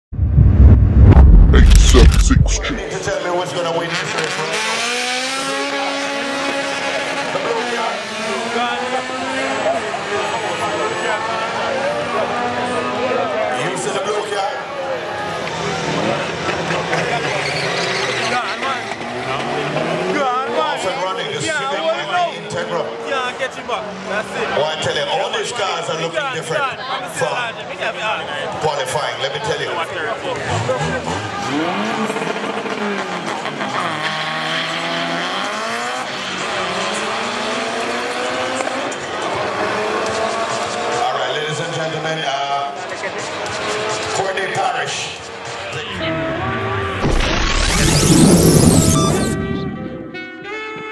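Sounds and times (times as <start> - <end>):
car engines revving hard: 0.4 - 13.9, 14.5 - 24.6, 30.2 - 44.6, 45.2 - 50.1.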